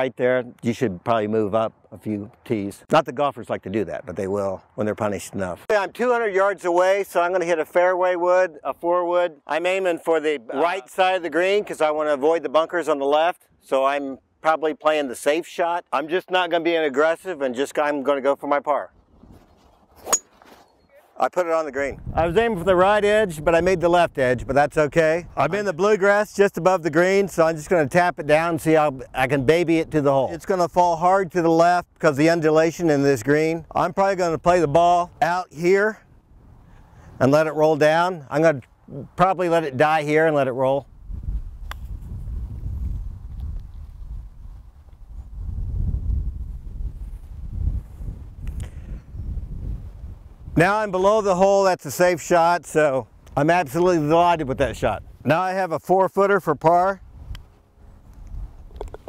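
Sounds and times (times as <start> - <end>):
golf club striking ball: 20.0 - 20.6
wind buffeting microphone: 21.8 - 26.3, 40.8 - 51.3, 53.0 - 55.3, 56.8 - 59.0.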